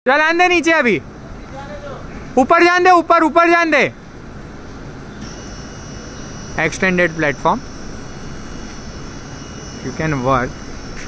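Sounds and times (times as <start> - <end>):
hydraulic pump humming: 5.2 - 11.0
thin high whine: 5.2 - 11.0.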